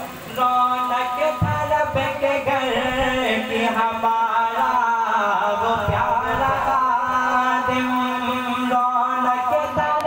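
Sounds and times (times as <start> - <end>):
man singing over loudspeaker: 0.1 - 10.0.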